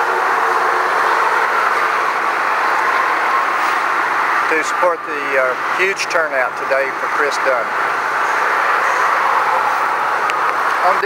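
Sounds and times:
loud vehicle noise: 0.0 - 11.0.

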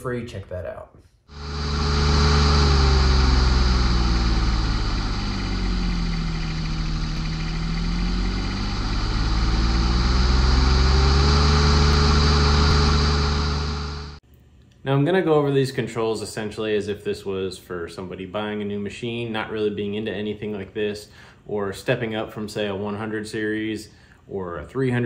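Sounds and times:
engine droning: 1.3 - 14.2.

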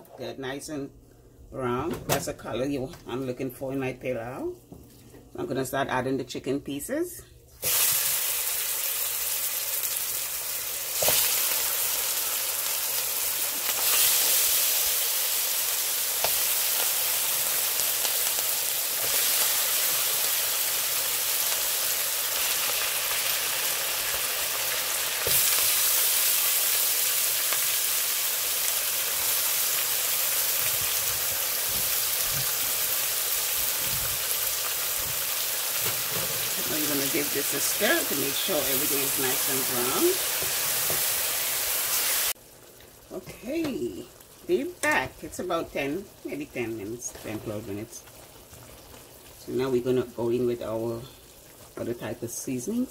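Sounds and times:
chicken sizzling in oil: 7.6 - 43.1.

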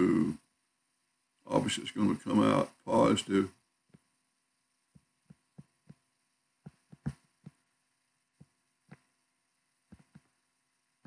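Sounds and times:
stylus tapping on touchscreen: 4.9 - 7.7, 9.9 - 10.4.

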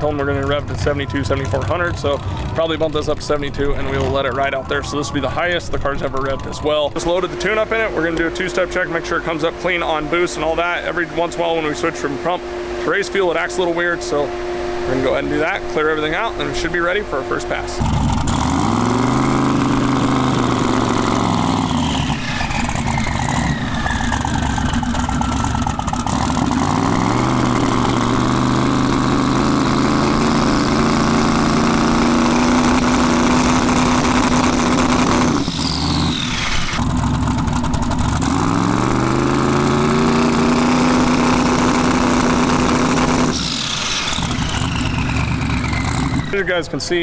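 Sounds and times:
engine revving on rev limiter: 7.0 - 46.7
turbo whistle: 13.8 - 18.2, 20.2 - 26.1, 35.2 - 36.8, 43.3 - 46.7.

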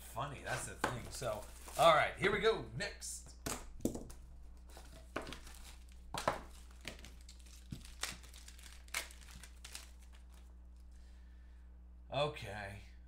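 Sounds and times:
low electrical hum: 0.0 - 13.0
plastic packaging crinkling: 4.7 - 10.5.

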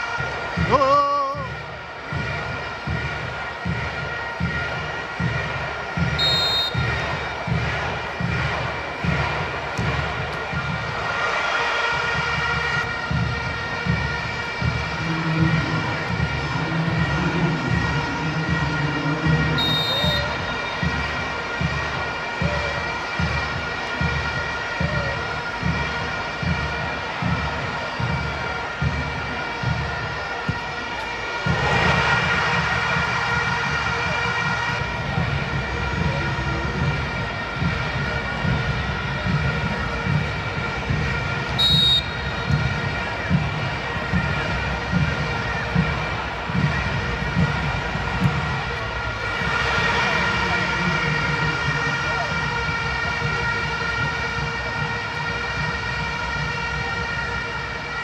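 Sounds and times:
steady drumbeat: 0.0 - 57.9
stadium crowd noise: 0.0 - 58.0.

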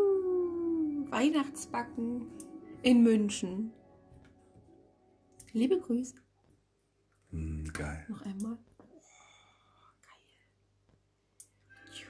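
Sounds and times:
music: 0.0 - 6.3, 11.4 - 12.0
faint breathy whisper: 9.0 - 10.6.

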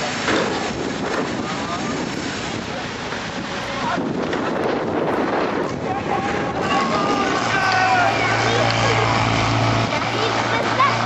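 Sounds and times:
fire pump engine running hard: 0.0 - 11.0
people shouting: 6.1 - 9.3.

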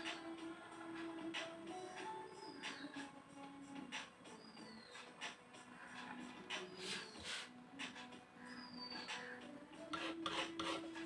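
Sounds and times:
palette knife scraping paint: 9.9 - 11.0.

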